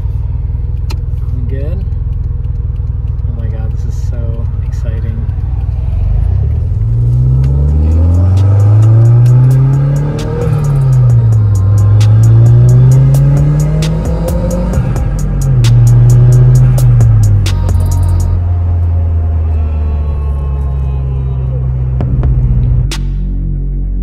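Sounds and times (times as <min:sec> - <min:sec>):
car engine accelerating: 0:00.0 - 0:24.0.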